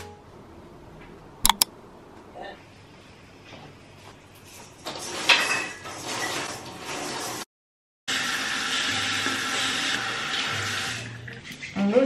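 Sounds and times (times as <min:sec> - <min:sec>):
tap water running into sink: 0:08.2 - 0:11.6.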